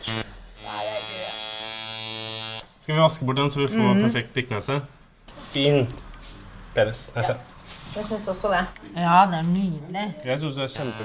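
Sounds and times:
tattoo machine buzzing: 0.0 - 2.7, 10.7 - 11.0.

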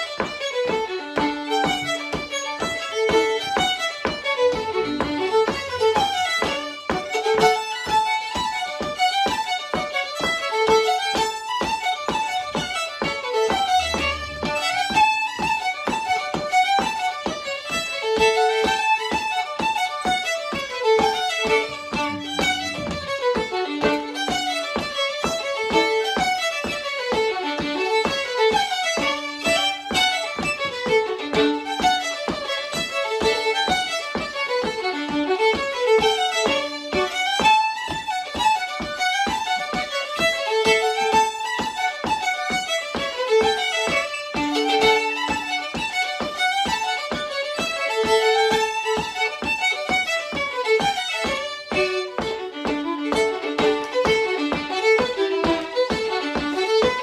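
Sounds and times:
fiddles playing fast tune: 0.0 - 57.0.

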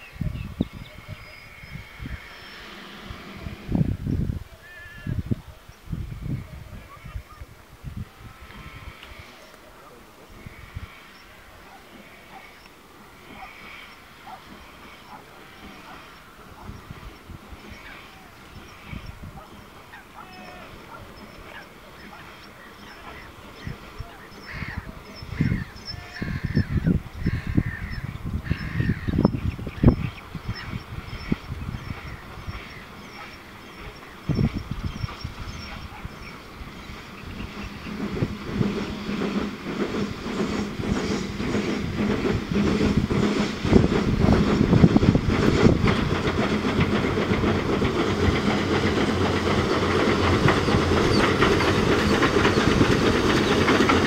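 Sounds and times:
birds calling: 0.0 - 3.7, 8.6 - 54.0
steam locomotive and train rumble: 0.0 - 54.0.

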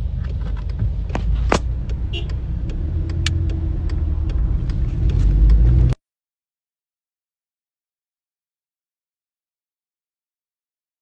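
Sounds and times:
engine and road rumble: 0.0 - 6.0.

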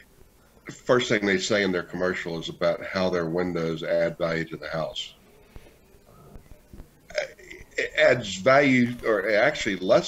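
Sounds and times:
man talking: 0.7 - 5.2, 7.1 - 10.0.

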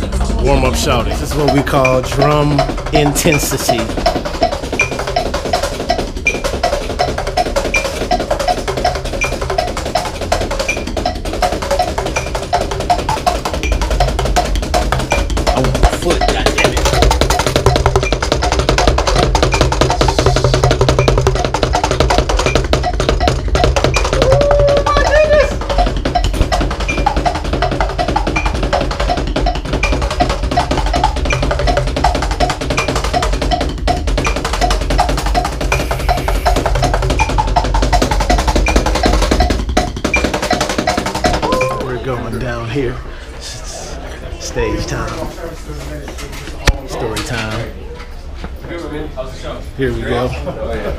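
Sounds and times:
fast drum kit playing: 0.0 - 42.9.

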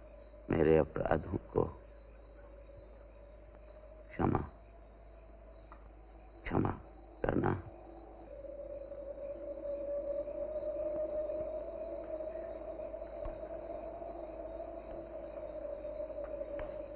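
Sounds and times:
faint high chirping: 0.0 - 16.9
low droning background music: 0.0 - 16.9
faint click: 13.2 - 13.4.

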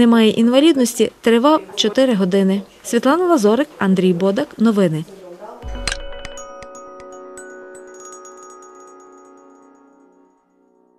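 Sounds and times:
news outro jingle with bell-like notes: 5.6 - 10.6.

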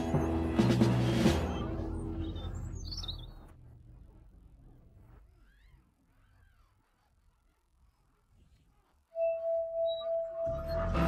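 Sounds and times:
background music: 0.0 - 2.8, 9.2 - 11.0
faint high bird chirps: 1.3 - 3.6.

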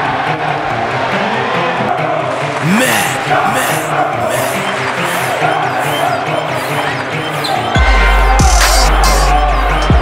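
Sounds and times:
electronic music: 2.6 - 10.0.

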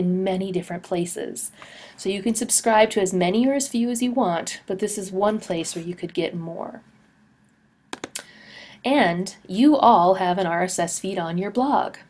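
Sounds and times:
woman speaking: 0.0 - 6.8, 8.8 - 12.0
computer keys clicking: 7.9 - 8.2.

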